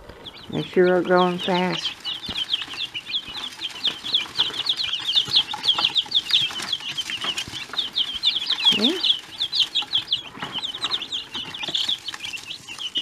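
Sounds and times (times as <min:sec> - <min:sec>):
chicks peeping: 0:00.0 - 0:13.0.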